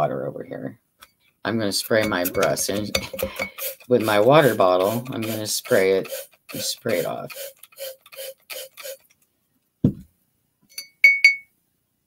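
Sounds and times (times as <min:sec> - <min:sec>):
soft brush strokes: 0:01.8 - 0:07.5
paintbrush clinking on glass jar: 0:01.9 - 0:07.1, 0:10.7 - 0:11.5.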